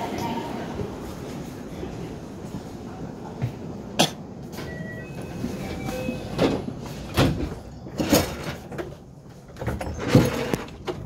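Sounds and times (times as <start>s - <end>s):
train car running noise: 0.0s - 11.0s.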